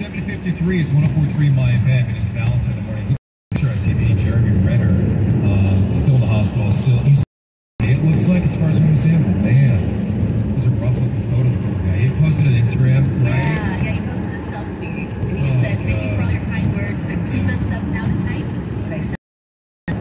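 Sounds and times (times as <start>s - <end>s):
voice on car radio: 0.0s - 19.1s.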